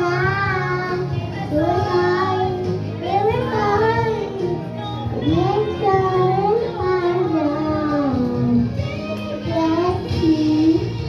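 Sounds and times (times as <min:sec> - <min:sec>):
girl singing karaoke: 0:00.0 - 0:11.0
instrumental backing track: 0:00.0 - 0:11.0.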